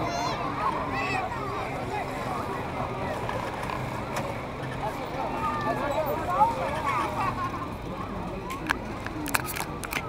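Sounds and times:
car engine running slowly: 0:00.0 - 0:10.0
chatter of voices: 0:00.0 - 0:10.0.

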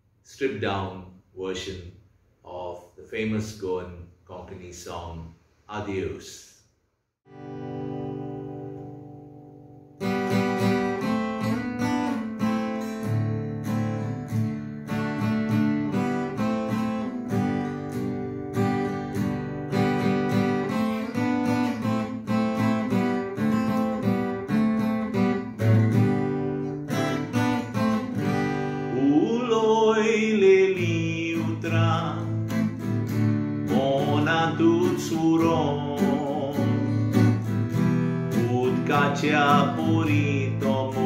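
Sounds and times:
acoustic guitar strumming and picking: 0:07.3 - 0:41.0.

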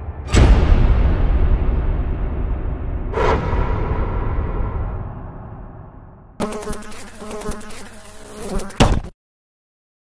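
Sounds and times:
low rumble: 0:00.0 - 0:06.4
buzzing crackling pulsing tone: 0:06.4 - 0:09.1.

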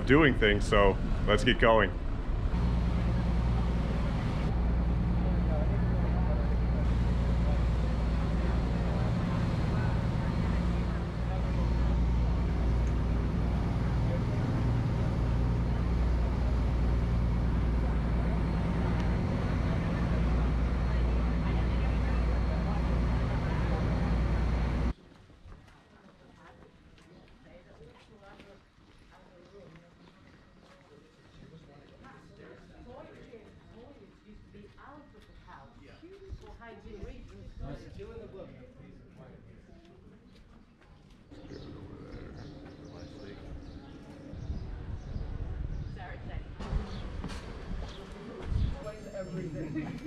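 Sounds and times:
boat engine droning: 0:00.0 - 0:24.9.

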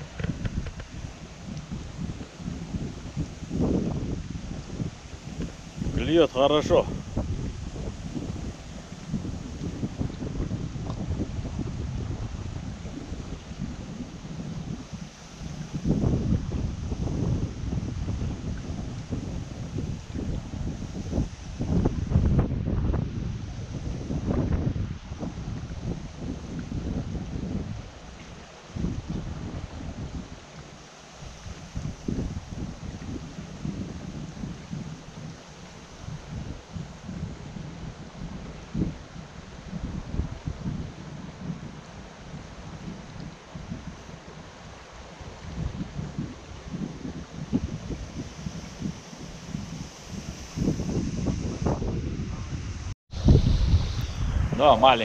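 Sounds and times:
shallow stream flowing: 0:00.0 - 0:55.0
wind buffeting microphone: 0:00.0 - 0:55.0.

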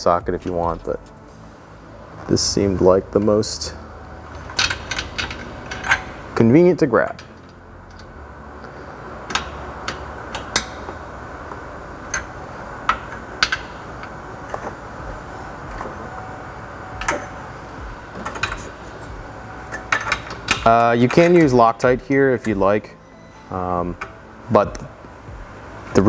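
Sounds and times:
low background hum: 0:00.0 - 0:26.0.

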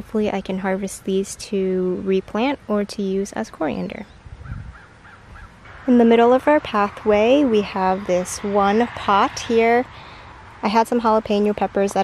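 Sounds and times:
low rumble: 0:04.4 - 0:11.0.

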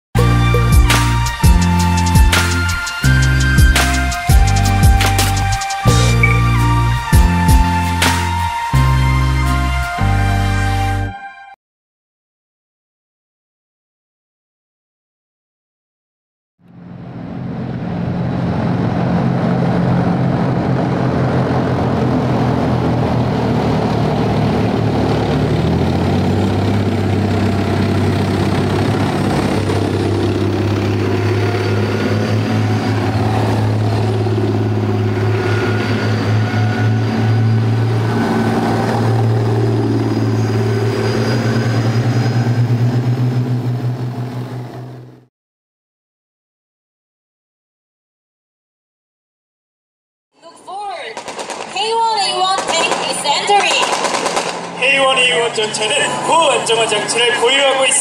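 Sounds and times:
tank diesel engine droning: 0:00.2 - 0:11.5, 0:16.7 - 0:45.3, 0:51.8 - 0:58.0
faint rising whines: 0:16.7 - 0:45.2.

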